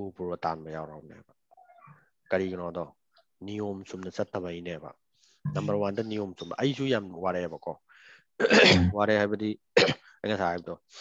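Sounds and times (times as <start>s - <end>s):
person speaking: 5.4s - 7.2s, 8.6s - 9.0s
rough throat clearing: 8.4s - 9.0s, 9.8s - 10.1s.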